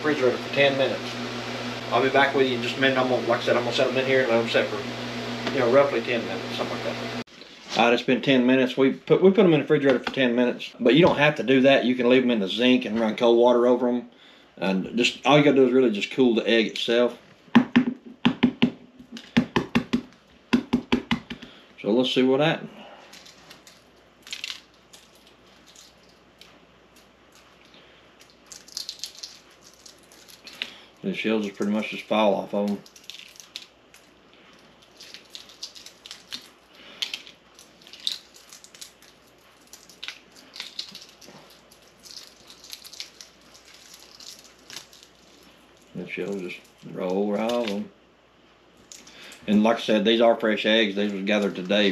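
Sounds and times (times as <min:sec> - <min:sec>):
eggshells cracking and peeling: 0:23.1 - 0:47.9, 0:48.8 - 0:49.4.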